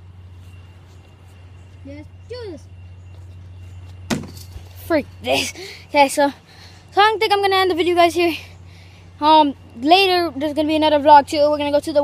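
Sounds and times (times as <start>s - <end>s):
faint steady high tone: 0.0s - 12.0s
steady low hum: 0.0s - 12.0s.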